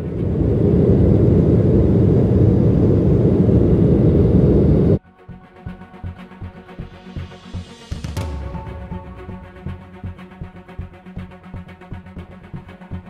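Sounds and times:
jet engines rumbling on takeoff: 0.0 - 5.0.

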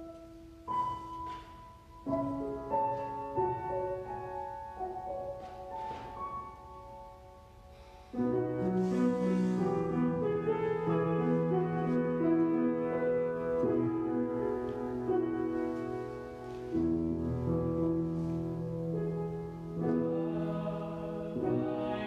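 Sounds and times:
grand piano playing slow chords: 0.0 - 22.0.

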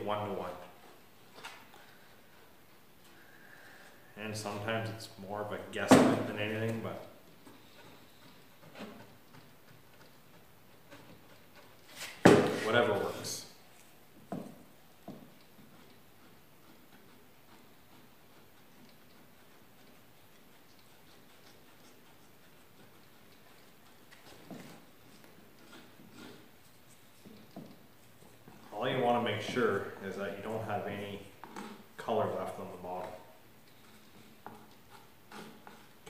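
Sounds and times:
mixing stick ticking and scraping: 0.0 - 36.0.

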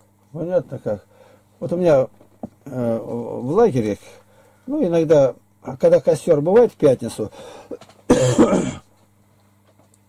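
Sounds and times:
faint steady hum: 0.0 - 10.0
man clearing his throat: 7.7 - 8.9.

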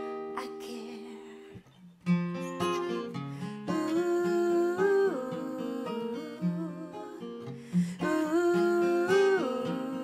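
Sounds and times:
strummed acoustic guitar: 0.0 - 10.0
woman singing wordless melody: 0.3 - 1.6, 2.6 - 10.0.

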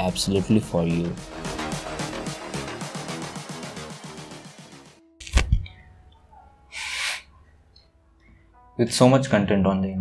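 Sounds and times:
man's sharp breath: 6.7 - 7.3.

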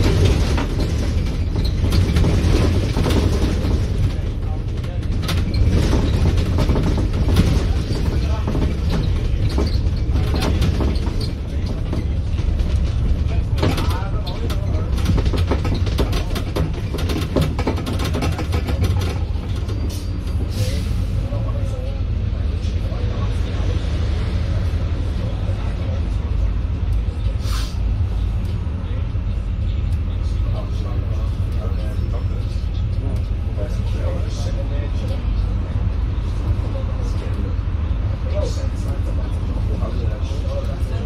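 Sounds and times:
bodywork rattling and clicking: 0.0 - 20.4
bus drivetrain droning: 0.0 - 41.0
brief air hisses: 27.4 - 27.8.

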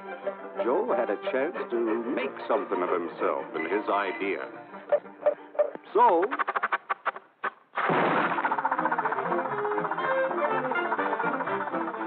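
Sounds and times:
fast cartoon orchestral music: 0.0 - 4.6, 8.3 - 12.0.

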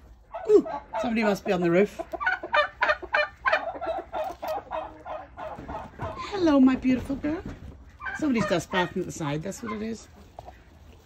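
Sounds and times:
turkey calling: 0.1 - 6.4, 7.9 - 10.8.

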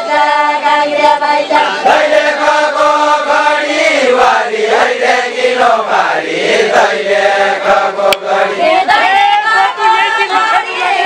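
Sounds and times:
group singing in unison: 0.0 - 11.0.

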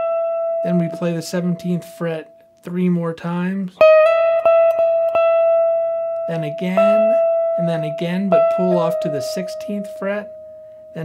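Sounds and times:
clean electric guitar note: 3.8 - 11.0.

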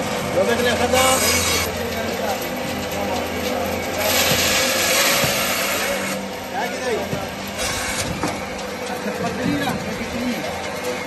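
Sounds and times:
saw motor hum: 0.0 - 11.0
bandsaw cutting meat: 0.6 - 2.6, 3.5 - 8.9.

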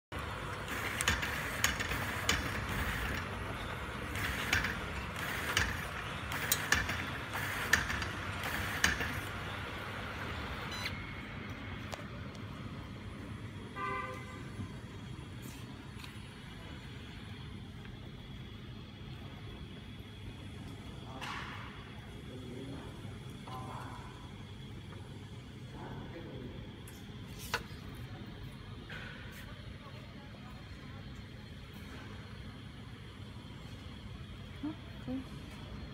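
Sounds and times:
motor and conveyor hum: 0.1 - 35.9
sharp machine clicks: 0.5 - 9.4.

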